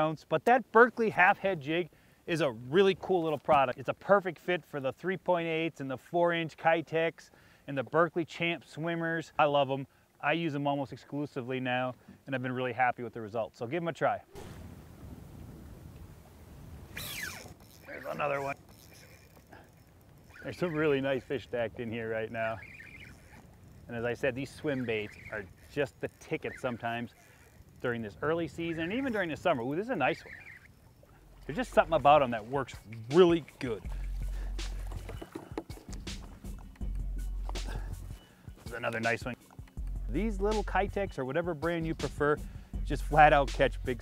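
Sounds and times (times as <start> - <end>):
wind rumble on microphone: 14.4 - 17.5
background music with bass line: 33.1 - 44.0.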